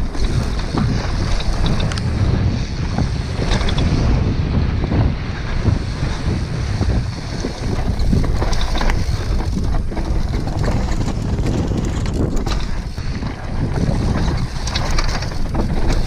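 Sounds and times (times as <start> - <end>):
tyres rolling over dirt and stones: 0.0 - 4.3, 5.0 - 16.0
bike rattling: 0.0 - 16.0
wind buffeting microphone: 0.0 - 16.0.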